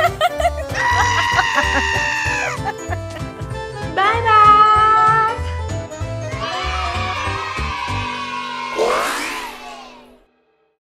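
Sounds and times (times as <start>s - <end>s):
background music: 0.0s - 10.6s
whooshing transition effect: 8.8s - 10.0s.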